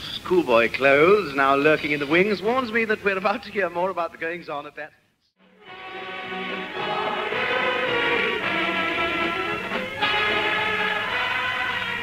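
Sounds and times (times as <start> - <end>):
orchestral music on old radio: 5.4 - 12.0.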